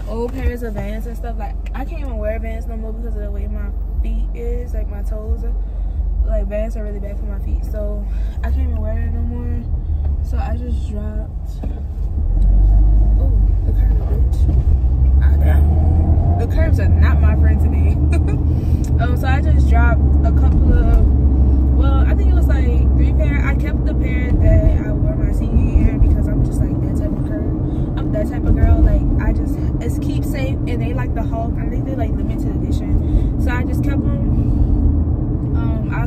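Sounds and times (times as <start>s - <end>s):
woman talking: 0.0s - 5.6s, 6.2s - 11.7s, 13.0s - 14.6s, 15.2s - 15.7s, 16.3s - 21.2s, 21.8s - 34.4s, 35.5s - 36.0s
car road and engine rumble: 0.0s - 36.0s.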